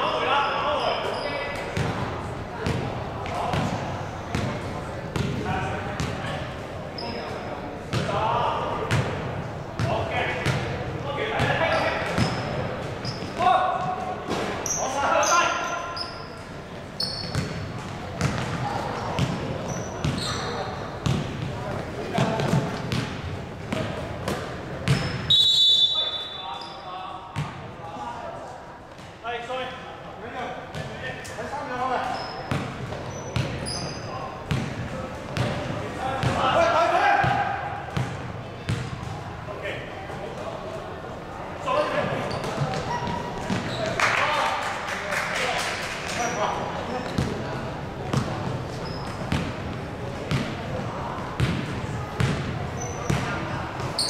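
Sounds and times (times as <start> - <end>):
basketball bouncing on wooden court: 18.2 - 20.3, 21.0 - 21.5, 22.2 - 25.3, 32.5 - 33.6, 34.5 - 36.4, 38.0 - 39.1, 42.3 - 43.8, 48.1 - 49.6, 50.3 - 50.6, 51.4 - 53.3.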